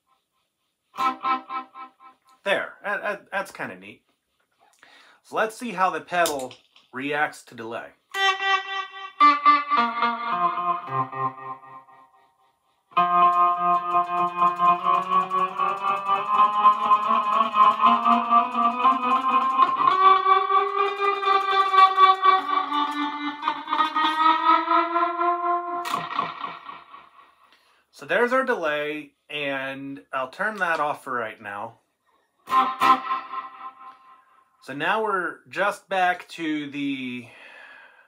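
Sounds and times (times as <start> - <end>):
electric guitar chords with reverb: 1.0 - 2.2, 8.2 - 12.3, 13.0 - 27.4, 32.5 - 34.4.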